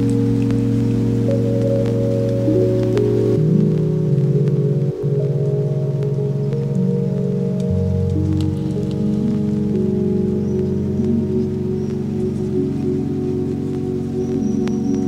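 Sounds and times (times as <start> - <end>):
faint crackle of clicks: 0.0 - 15.0
low drone tones: 0.0 - 15.0.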